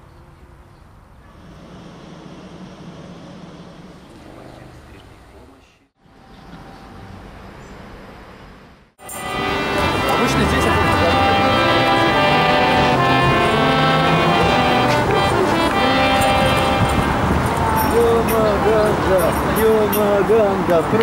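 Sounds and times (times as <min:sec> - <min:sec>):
background noise: 0:00.0 - 0:21.0
harmonium playing reed chords: 0:09.0 - 0:20.2.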